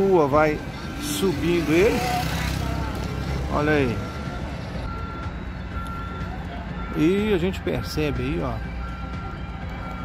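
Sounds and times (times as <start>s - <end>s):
low rumble of engines and traffic: 0.0s - 10.0s
reversing alarm beeping: 3.3s - 10.0s.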